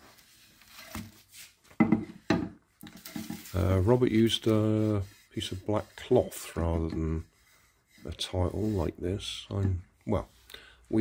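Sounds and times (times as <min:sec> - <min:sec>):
soft rustles of cling film: 0:00.0 - 0:01.8.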